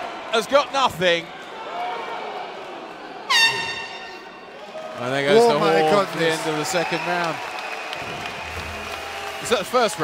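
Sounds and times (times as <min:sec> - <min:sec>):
horn tone echoing in hall: 0:03.3 - 0:04.5.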